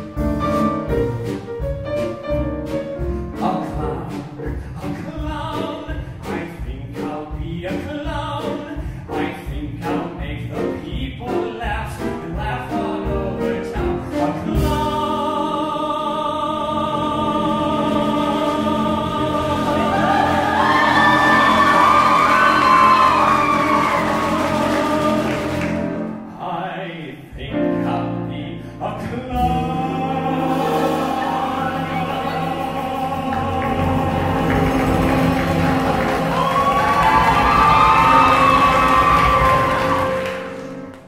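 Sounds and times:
live band with piano: 0.0s - 41.0s
man singing: 3.3s - 20.0s, 24.0s - 25.6s, 26.3s - 34.9s.

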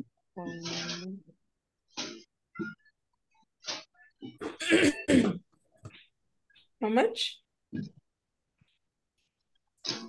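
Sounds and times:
person coughing: 4.4s - 5.5s.

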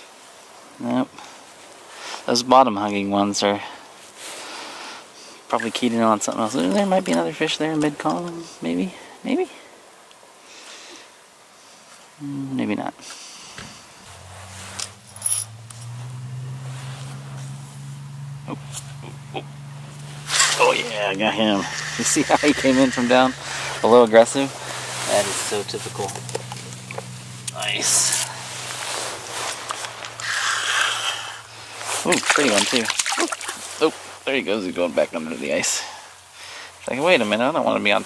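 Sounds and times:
rustling and scraping: 13.5s - 19.2s, 19.8s - 34.2s
steady low hum: 14.0s - 32.0s
hissing rush: 16.6s - 34.2s.

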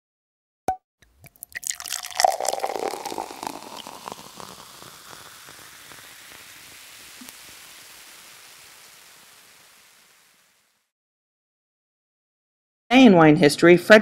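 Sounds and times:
sparkling wine fizzing in a glass: 1.0s - 10.9s.

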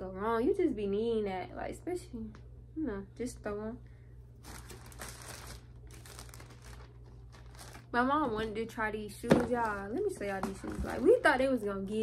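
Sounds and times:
plastic packaging crinkling: 4.4s - 8.6s, 9.3s - 11.3s.

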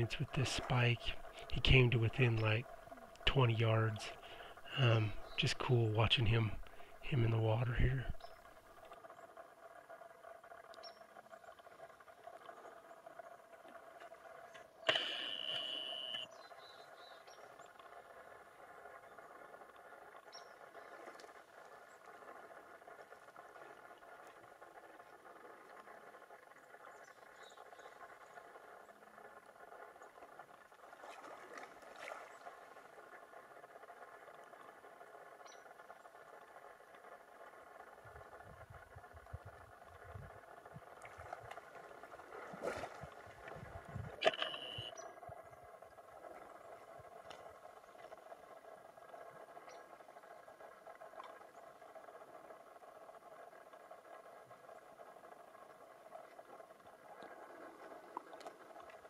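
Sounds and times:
water sloshing: 30.3s - 33.1s, 40.8s - 44.8s.

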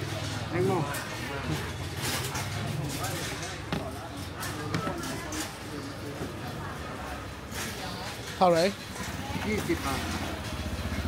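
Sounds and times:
sharp clicks and knocks: 0.0s - 6.5s.

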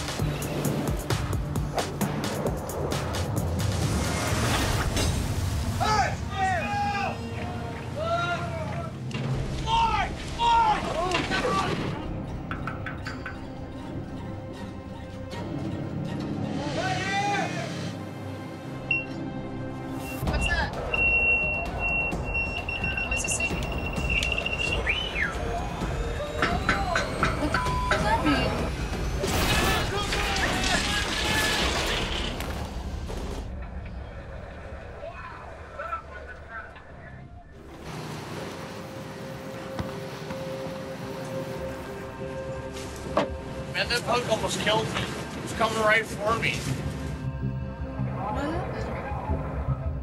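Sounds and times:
dramatic background music: 0.0s - 34.4s, 37.5s - 50.0s
people shouting: 5.8s - 9.0s, 9.6s - 11.8s.

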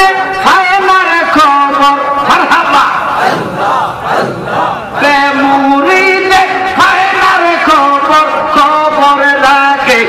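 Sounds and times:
crowd of men chanting: 2.3s - 8.1s.

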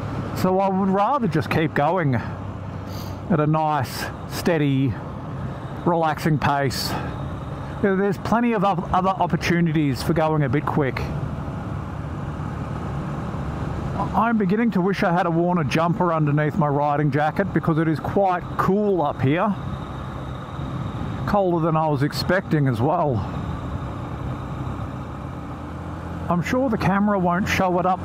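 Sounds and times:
motorcycle engine cruising: 0.0s - 28.0s
wind and road noise: 0.0s - 28.0s.

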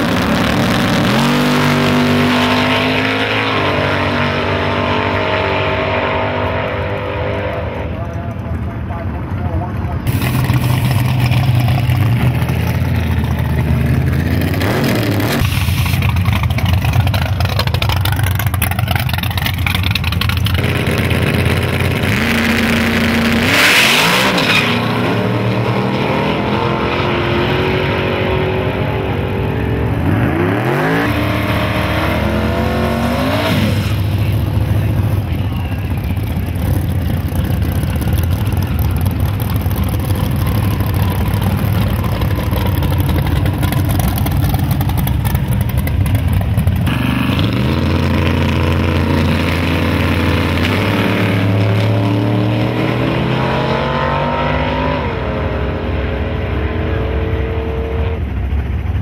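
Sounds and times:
drag race car engines: 0.0s - 59.0s.

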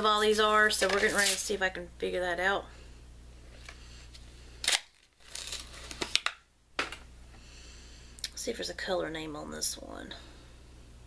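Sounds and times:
packaging rustling: 4.6s - 6.4s.

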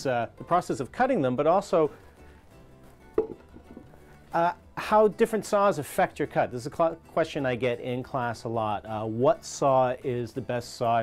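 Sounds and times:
background music with plucked guitar: 0.0s - 11.0s.

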